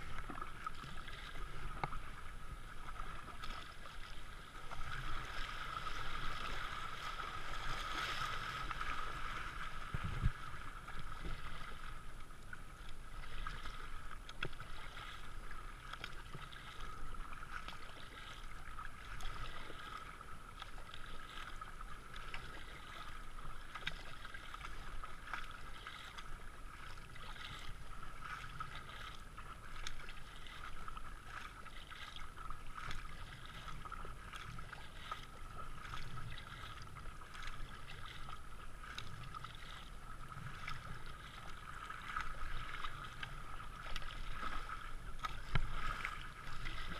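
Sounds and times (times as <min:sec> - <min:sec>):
paddle blades splashing: 0:00.0 - 0:46.9
water rushing and splashing: 0:00.0 - 0:46.9.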